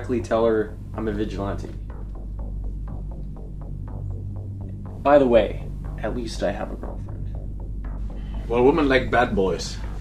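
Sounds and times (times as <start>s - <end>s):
low electronic drone: 0.0s - 10.0s
faint evenly spaced ticks: 0.1s - 10.0s.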